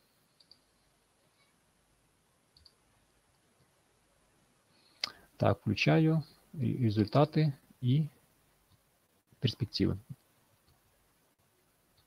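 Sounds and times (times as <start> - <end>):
computer mouse clicks: 0.4 - 0.7, 2.5 - 3.4.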